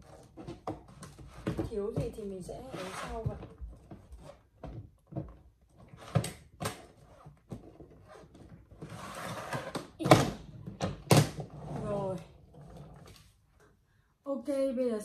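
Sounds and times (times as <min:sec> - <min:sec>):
suitcase zipper rasp: 0:02.6 - 0:04.4, 0:06.9 - 0:09.8, 0:11.4 - 0:13.2.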